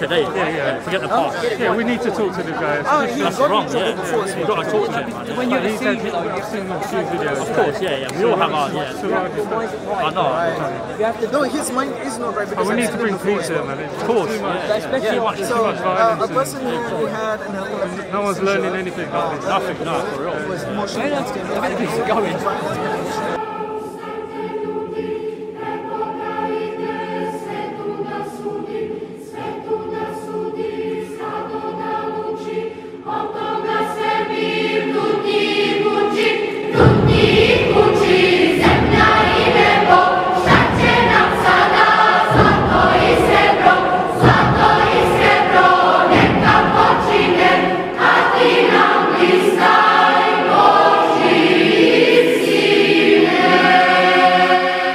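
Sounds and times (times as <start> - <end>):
choir singing a hymn: 0.0 - 54.9
deep beats: 36.6 - 51.8.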